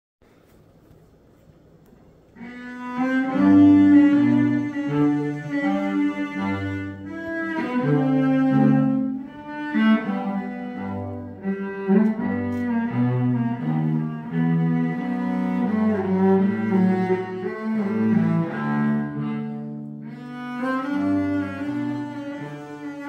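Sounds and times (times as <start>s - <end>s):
bowed cello melody: 2.3s - 23.0s.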